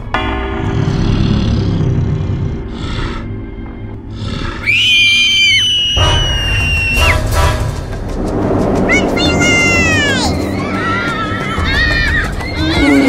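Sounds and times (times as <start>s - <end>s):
background music: 0.0s - 13.0s
high-pitched scream: 4.6s - 7.2s.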